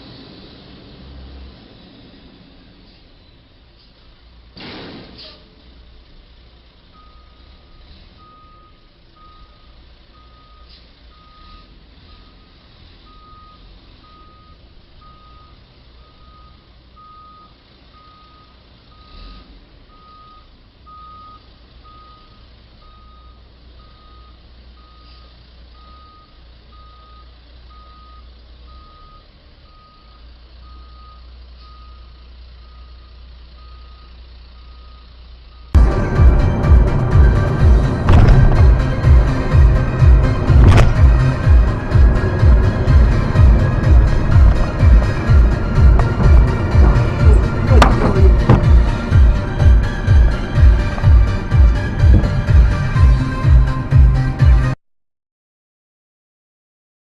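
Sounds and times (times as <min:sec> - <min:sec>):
low engine rumble: 0:00.0 - 0:54.8
reversing alarm beeping: 0:06.9 - 0:53.7.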